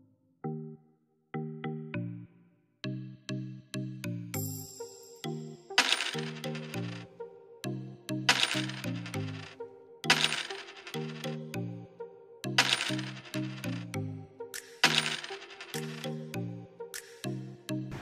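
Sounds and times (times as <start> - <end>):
coins clinking: 5.8 - 7.0, 8.3 - 9.5, 10.1 - 11.5, 12.6 - 14.0, 14.6 - 16.3
background music with beat: 12.4 - 18.0.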